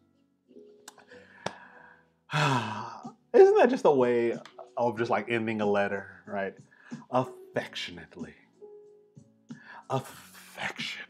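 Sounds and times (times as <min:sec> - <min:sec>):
man sighing: 0:01.3 - 0:03.1.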